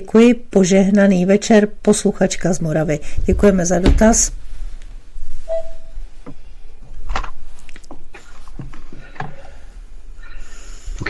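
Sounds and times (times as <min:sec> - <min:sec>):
low mains hum: 0:00.0 - 0:11.0
short faint tone: 0:05.5 - 0:06.0.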